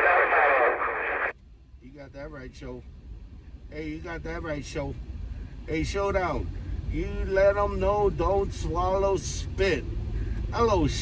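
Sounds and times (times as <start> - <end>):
radio squelch closing: 0.0 - 1.3
voice over cb radio: 0.0 - 1.3.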